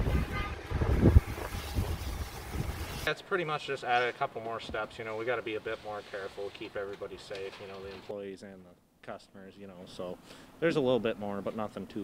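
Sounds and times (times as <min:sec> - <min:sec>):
wind buffeting microphone: 0:00.0 - 0:03.0.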